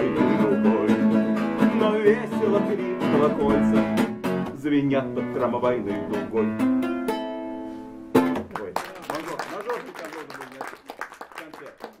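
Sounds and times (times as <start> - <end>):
scattered clapping: 8.3 - 12.0.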